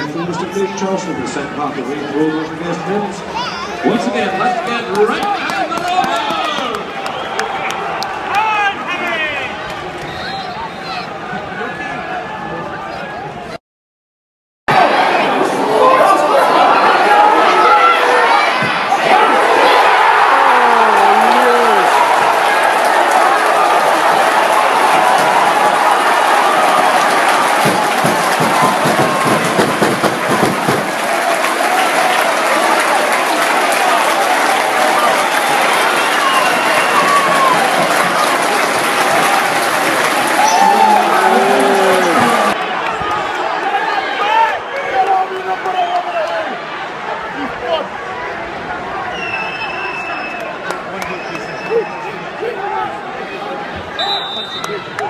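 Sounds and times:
crowd shouts and chants: 0.0s - 13.6s, 14.7s - 55.0s
stadium crowd voices: 0.0s - 13.6s, 14.7s - 55.0s
crowd clapping: 3.9s - 10.1s, 20.0s - 46.6s, 49.9s - 52.2s, 54.5s - 55.0s
crowd murmur: 14.7s - 55.0s.

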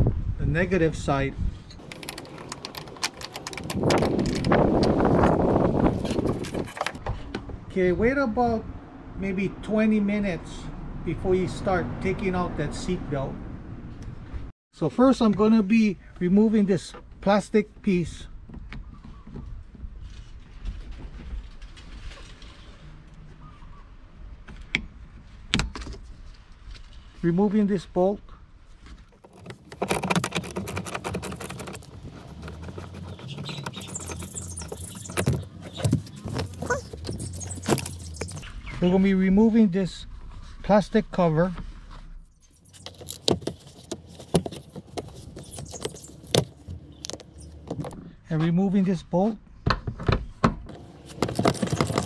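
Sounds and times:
sharp plastic clicks: 1.8s - 5.0s
screwdriver scraping plastic: 1.8s - 7.0s, 29.2s - 38.4s, 42.6s - 48.0s, 50.7s - 52.0s
metallic scraping and rattling: 29.2s - 38.4s, 50.7s - 52.0s.

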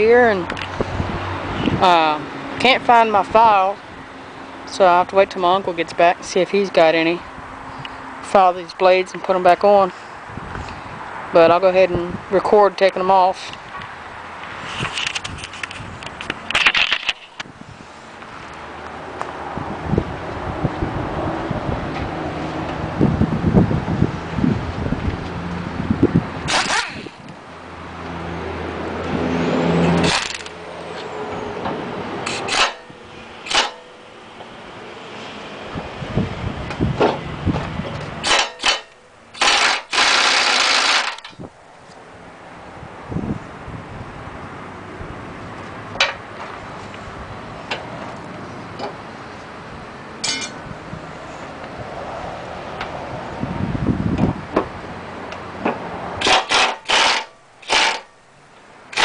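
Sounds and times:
impact wrench rattling: 38.2s - 41.4s, 56.2s - 58.1s.

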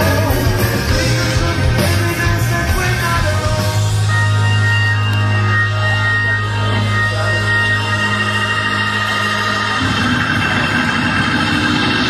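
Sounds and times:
low bass drone: 0.0s - 12.0s
rock band playing live: 0.0s - 12.0s.

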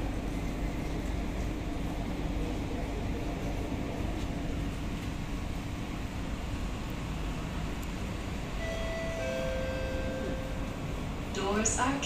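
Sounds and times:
train interior low rumble: 0.0s - 12.0s
pairs of steady tones: 8.6s - 12.0s.

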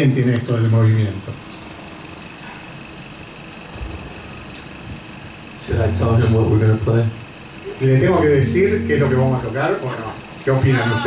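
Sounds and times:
room hiss and hum: 0.0s - 11.0s
person speaking: 7.9s - 11.0s
faint low thumps: 8.0s - 9.8s.

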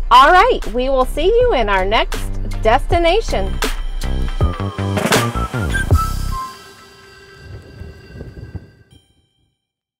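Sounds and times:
low rumble: 0.0s - 9.0s
soft music with sustained notes: 2.3s - 9.3s
bell-like ring: 3.3s - 9.5s.

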